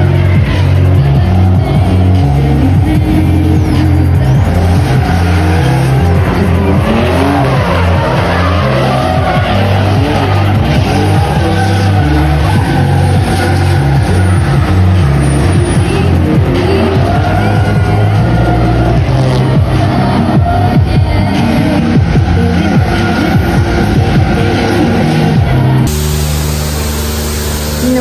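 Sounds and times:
background music with bass line: 0:00.0 - 0:28.0
car engines revving: 0:00.0 - 0:28.0
tyres squealing: 0:00.1 - 0:28.0.

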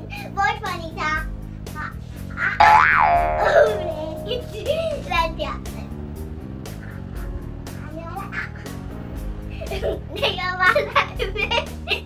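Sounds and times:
cartoon boing: 0:02.6 - 0:04.6
background music: 0:02.6 - 0:07.9.

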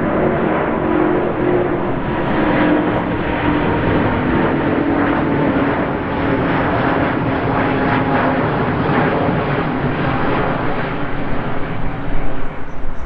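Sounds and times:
jet engines at climb power: 0:00.0 - 0:13.0.

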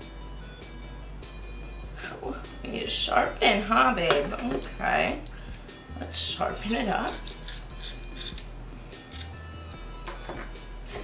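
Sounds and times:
background music: 0:00.0 - 0:11.0
pencil sharpener scraping: 0:07.1 - 0:09.4.

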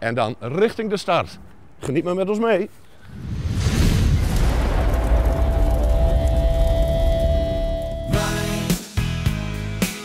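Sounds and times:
deep rumbling boom: 0:03.1 - 0:08.2
sustained tone: 0:05.0 - 0:08.3.

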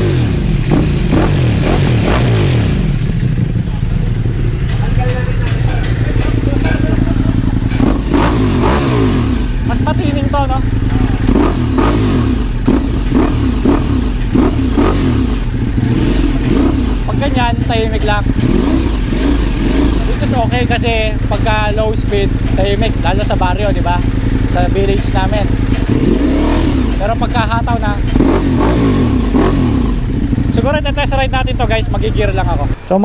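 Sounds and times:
motorcycle engine idling: 0:00.0 - 0:32.8
motorcycle throttle blips: 0:00.0 - 0:32.8.

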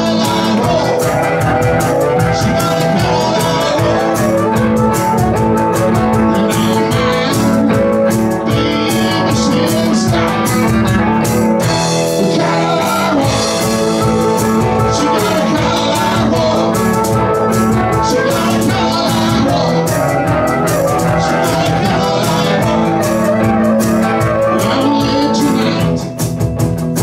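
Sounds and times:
man singing: 0:00.0 - 0:26.2
drums: 0:00.0 - 0:27.0
electric guitars: 0:00.0 - 0:27.0.

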